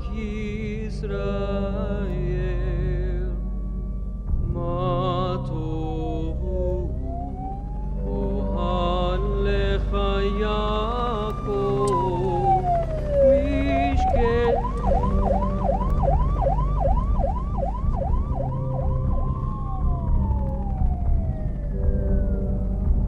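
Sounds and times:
low drone: 0.0s - 23.0s
siren wailing: 6.8s - 22.9s
man chanting prayer: 8.1s - 15.2s
siren fast yelp: 11.8s - 21.5s.

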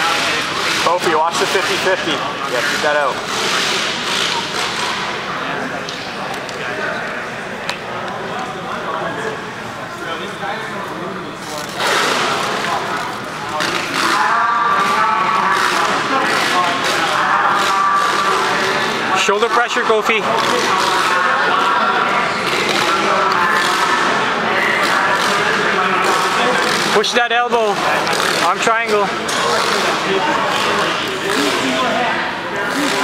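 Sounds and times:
echoing background chatter: 0.0s - 33.0s.

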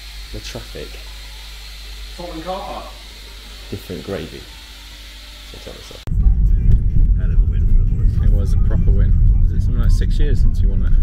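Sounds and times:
music playing: 5.6s - 11.0s.

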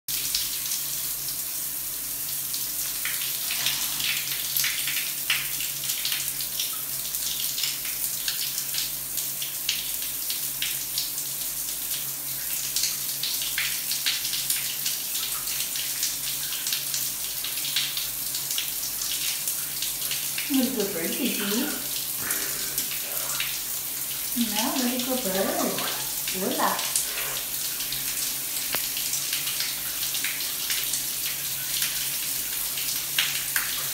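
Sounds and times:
shower running: 0.1s - 33.9s.

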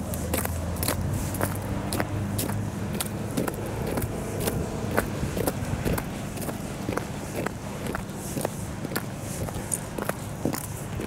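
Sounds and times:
footsteps on packed snow: 0.0s - 11.0s.

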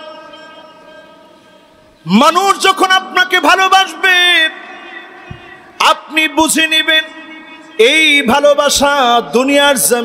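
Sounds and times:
loudspeaker ringing tone: 0.0s - 8.6s.

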